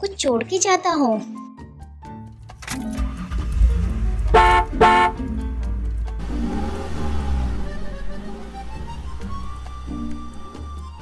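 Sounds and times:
low engine rumble: 3.0s - 11.0s
car horn beeping: 4.2s - 5.4s.

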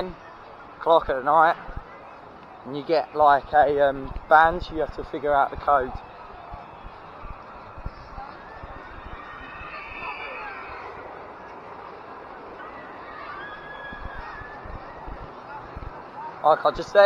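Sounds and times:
distant voices and calls: 6.0s - 16.4s.

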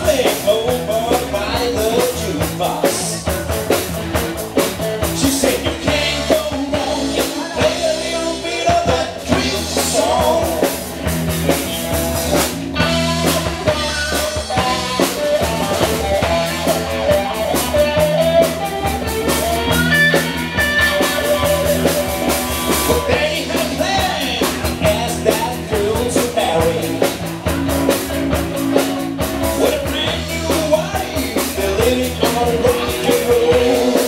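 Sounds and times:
man singing: 0.0s - 11.2s, 12.7s - 18.9s, 19.6s - 28.3s, 29.2s - 34.0s
bass guitar: 0.0s - 34.0s
drum kit: 0.0s - 34.0s
electric guitars: 0.0s - 34.0s.

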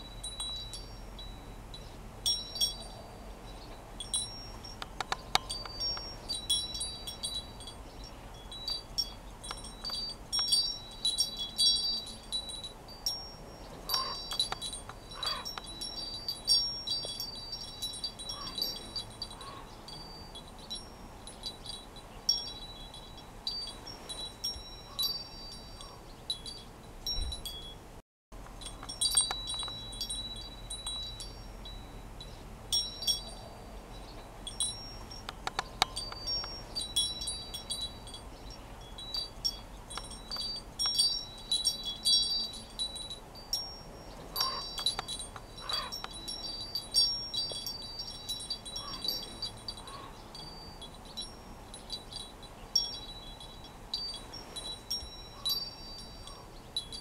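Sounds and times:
high-pitched chimes tinkling: 0.0s - 57.0s.

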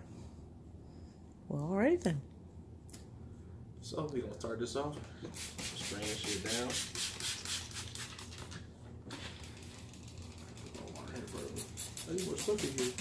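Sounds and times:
spray bottle spraying: 5.3s - 8.5s, 11.2s - 13.0s.

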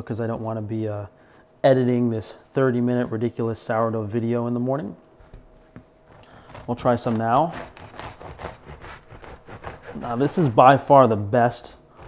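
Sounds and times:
bread knife sawing through crust: 6.1s - 12.0s.

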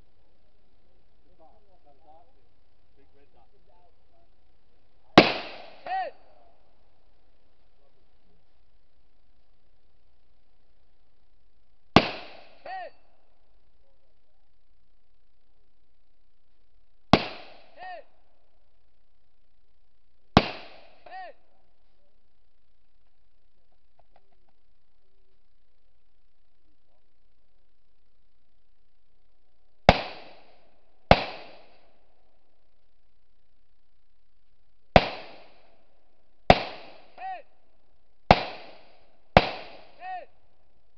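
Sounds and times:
gunshots with echo: 5.2s - 5.9s, 12.0s - 12.6s, 17.2s - 17.9s, 20.4s - 21.1s, 29.9s - 31.8s, 35.0s - 35.6s, 36.5s - 37.2s, 38.3s - 40.0s
rifle shot: 5.2s - 6.0s, 12.0s - 12.7s, 17.1s - 17.8s, 20.4s - 21.1s, 29.9s - 32.0s, 34.9s - 35.8s, 36.5s - 37.2s, 38.3s - 40.0s.

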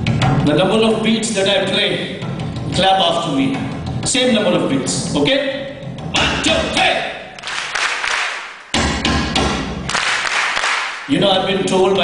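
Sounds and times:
audience clapping: 7.4s - 8.8s, 9.8s - 11.1s.

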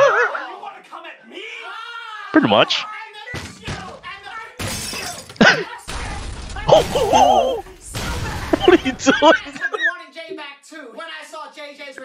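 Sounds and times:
crashing shattering noise: 4.6s - 9.5s
person shouting: 6.7s - 7.7s.

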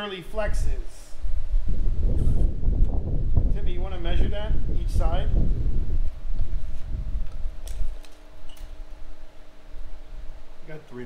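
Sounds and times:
faint hum: 0.0s - 11.0s
wind buffeting microphone: 0.4s - 10.6s.

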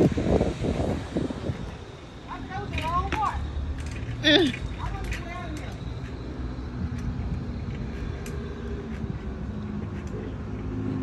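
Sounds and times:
wind rumble on microphone: 0.0s - 4.1s
street noise: 0.0s - 11.0s.

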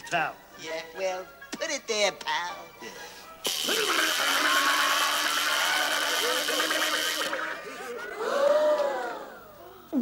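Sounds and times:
loud electric buzz: 3.4s - 7.7s.

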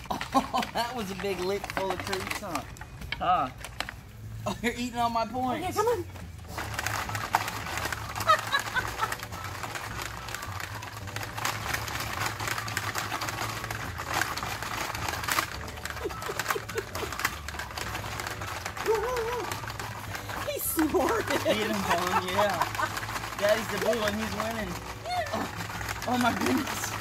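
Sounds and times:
plastic game levers clacking: 0.0s - 4.0s, 6.5s - 27.0s.

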